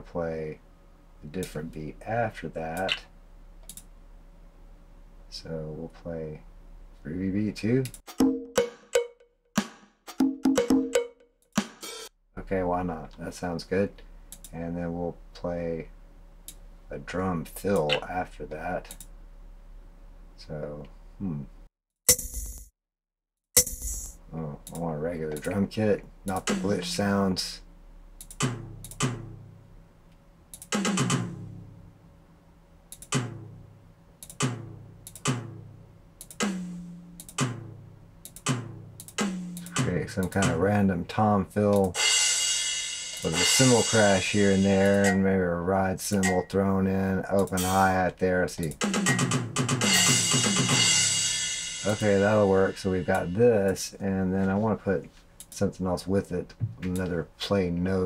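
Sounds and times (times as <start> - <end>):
electronic drum hits with ringing tone: 22.1 - 22.7, 23.6 - 24.2, 49.1 - 52.3
tom drum strikes: 26.3 - 27.0, 28.4 - 29.5, 30.8 - 31.6, 33.1 - 33.6, 34.4 - 35.8, 36.4 - 37.9, 38.5 - 40.6, 41.9 - 45.2, 48.8 - 53.3
cymbal crash: 42.0 - 45.0, 49.8 - 53.1.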